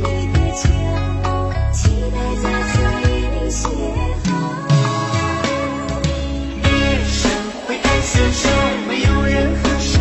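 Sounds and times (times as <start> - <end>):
pop love song with backing: 0.0 - 10.0.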